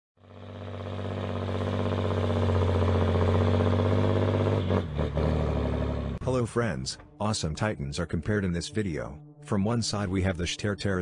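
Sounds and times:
heavy engine running: 0.2 - 6.2.

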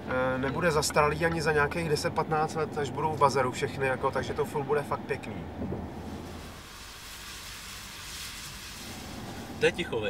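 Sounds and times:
low road rumble: 0.0 - 10.0
tyres hissing on wet road: 6.0 - 10.0.

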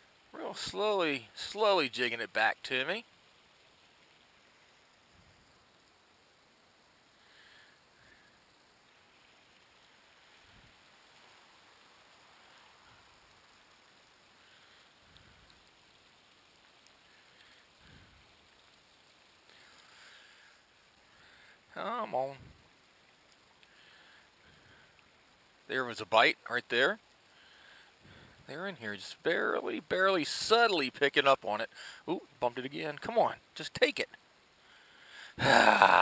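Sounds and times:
faint outdoor hiss: 0.0 - 36.0.

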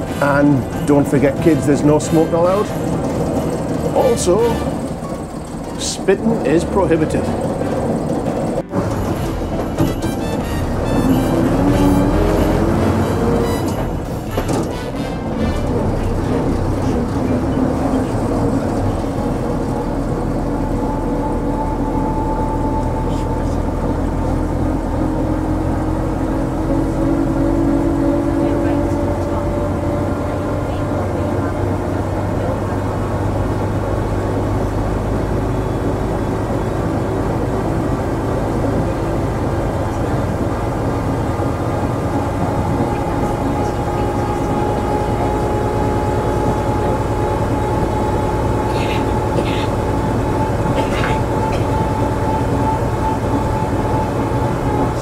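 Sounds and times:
bus engine running: 0.0 - 55.0.

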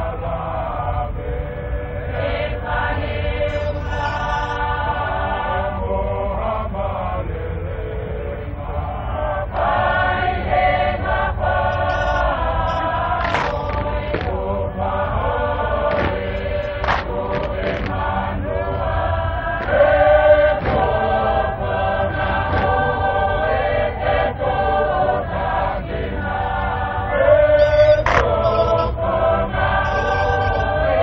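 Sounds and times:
group chanting in harmony: 0.0 - 31.0
steady low rumble: 0.0 - 31.0.

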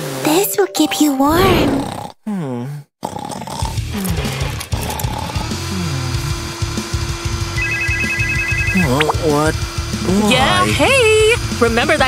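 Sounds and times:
vacuum cleaner humming: 5.6 - 11.6
cartoon music with steady beat: 6.6 - 10.7
high beeps: 7.6 - 9.2.

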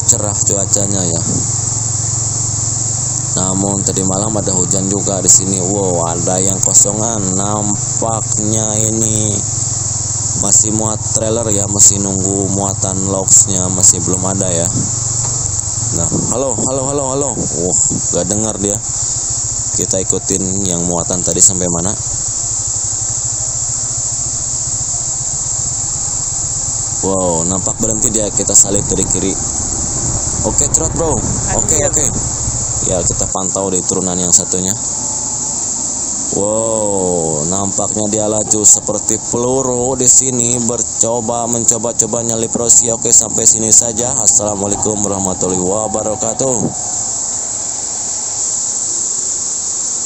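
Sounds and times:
truck diesel engine running: 0.0 - 49.7
insect chorus drone: 0.0 - 50.0.

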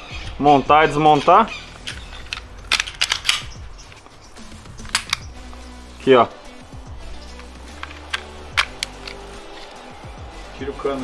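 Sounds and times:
pistol parts clicking: 0.9 - 5.7, 7.0 - 9.8.

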